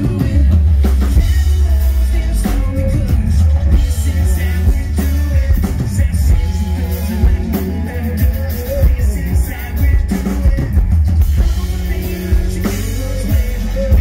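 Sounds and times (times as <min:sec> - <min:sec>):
bass guitar: 0:00.0 - 0:14.0
drum kit: 0:00.0 - 0:14.0
electric guitars: 0:00.0 - 0:14.0.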